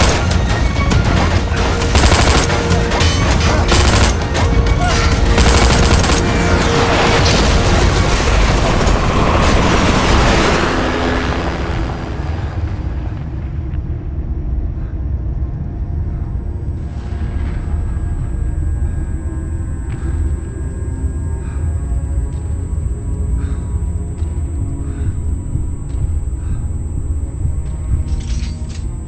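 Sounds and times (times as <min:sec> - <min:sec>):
dark tense film score: 0:00.0 - 0:29.0.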